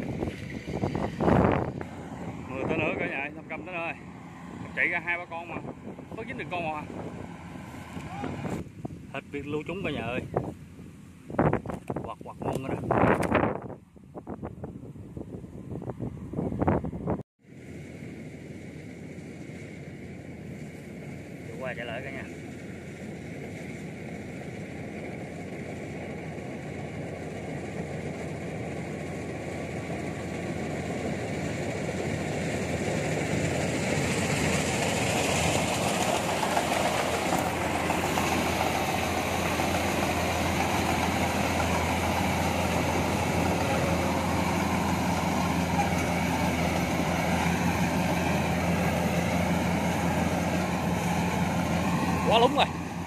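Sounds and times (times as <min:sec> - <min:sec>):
combine harvester running: 0:00.0 - 0:13.5, 0:17.4 - 0:53.0.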